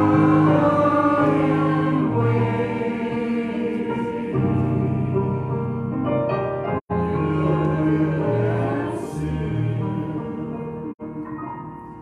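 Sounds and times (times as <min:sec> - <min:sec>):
congregation singing a hymn: 0:00.0 - 0:05.7, 0:06.9 - 0:11.0.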